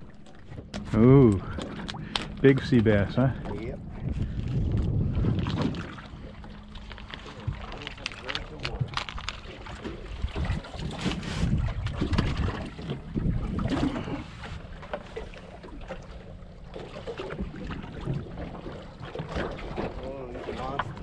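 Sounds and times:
wind buffeting microphone: 0:00.0 - 0:07.8, 0:08.5 - 0:14.8, 0:16.9 - 0:21.0
water lapping against boat hull: 0:00.0 - 0:21.0
hands clicking and rustling: 0:07.8 - 0:09.4.

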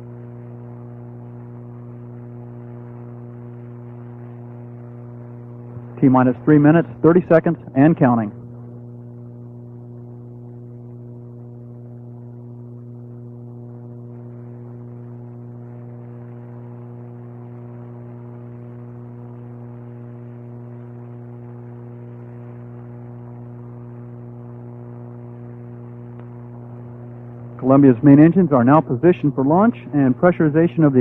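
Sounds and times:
soft hiss: 0:00.0 - 0:30.9
steady low hum: 0:00.0 - 0:31.0.

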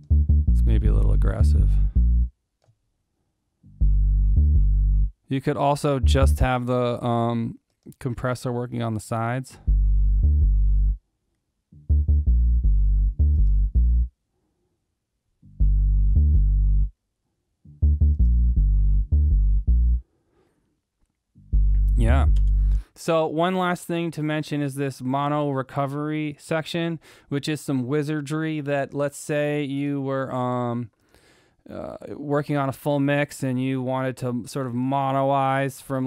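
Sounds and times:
synthesizer bass loop: 0:00.0 - 0:02.3, 0:03.7 - 0:05.1, 0:09.7 - 0:11.0, 0:11.8 - 0:14.1, 0:15.6 - 0:16.9, 0:17.7 - 0:20.0, 0:21.4 - 0:22.8.

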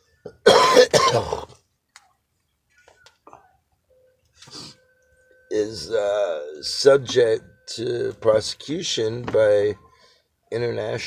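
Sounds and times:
man coughing: 0:00.4 - 0:01.6.

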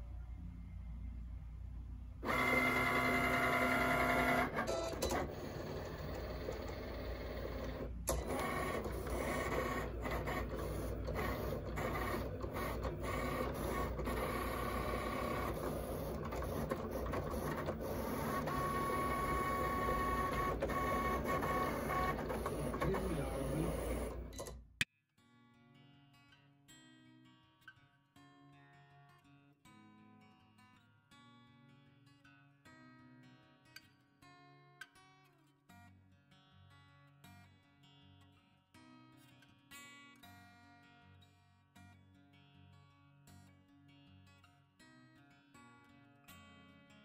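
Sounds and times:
cutting machine motors whirring: 0:02.2 - 0:24.6.

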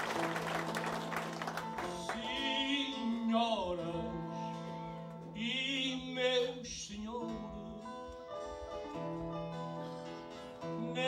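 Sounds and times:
plucked guitar: 0:00.0 - 0:11.0
man singing with vibrato: 0:01.8 - 0:08.1, 0:10.6 - 0:11.0.

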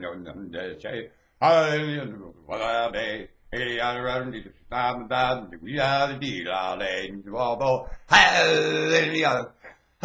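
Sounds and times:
man chanting in a low voice: 0:00.0 - 0:09.6.

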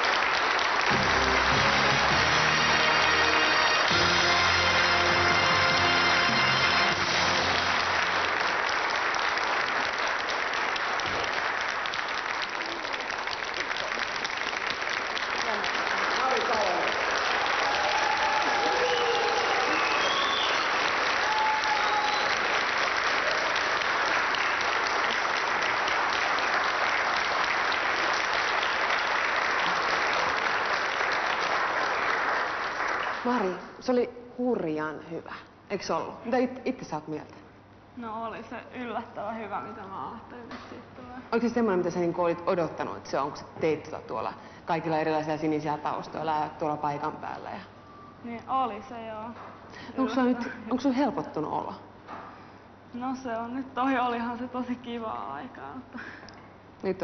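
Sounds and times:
audience applauding: 0:00.0 - 0:33.7
music track: 0:00.9 - 0:08.3.

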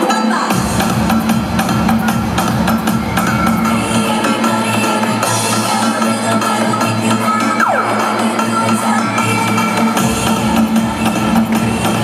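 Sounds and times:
cheerleading music with drum beat: 0:00.0 - 0:12.0.

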